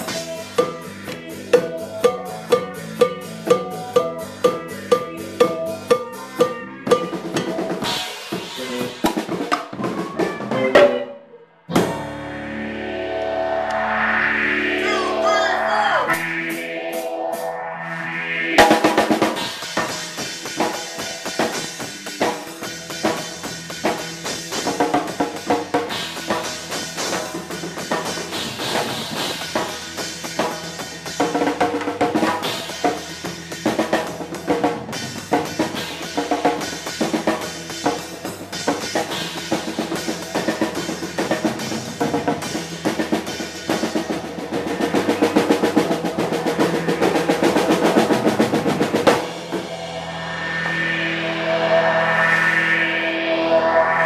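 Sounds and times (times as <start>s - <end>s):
electric bass: 0.0s - 9.4s, 11.7s - 54.0s
drum kit played hard: 0.0s - 11.1s, 18.6s - 50.8s.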